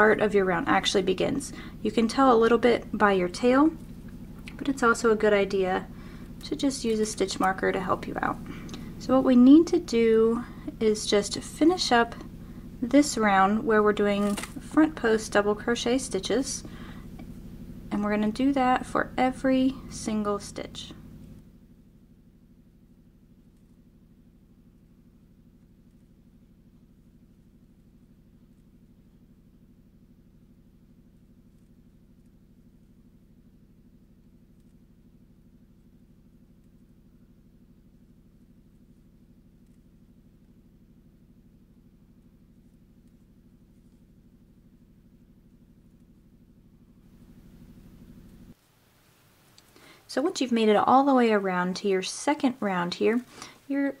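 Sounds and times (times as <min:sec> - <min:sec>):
faint low hum: 0:00.0 - 0:54.0.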